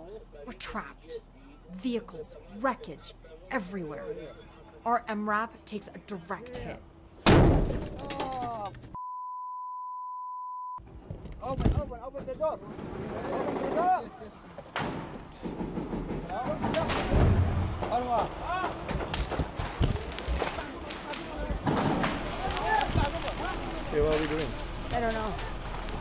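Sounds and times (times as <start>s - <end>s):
men shouting: 17.8s - 18.9s.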